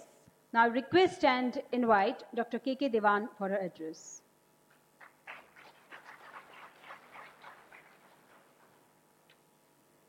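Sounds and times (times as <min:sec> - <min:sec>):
audience clapping: 0:05.0 - 0:08.9.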